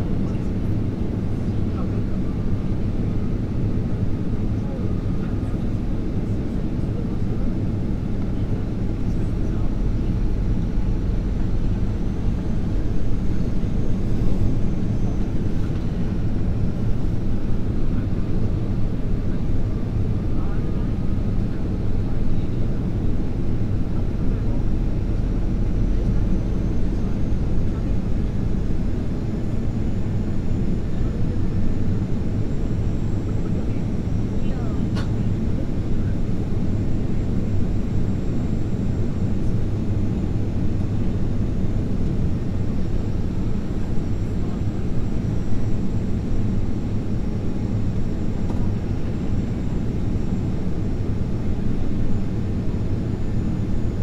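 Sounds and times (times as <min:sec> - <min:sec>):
airplane cabin rumble: 0:00.0 - 0:54.0.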